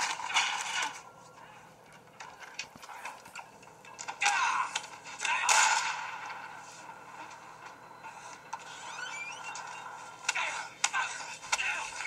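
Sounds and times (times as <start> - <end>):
short rising squeaks: 8.7 - 9.8.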